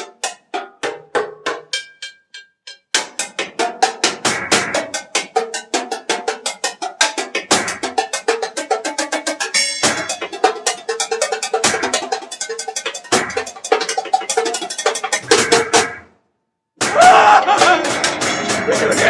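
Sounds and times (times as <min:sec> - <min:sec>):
fast percussion rhythm: 0:00.0 - 0:16.2, 0:16.8 - 0:19.0.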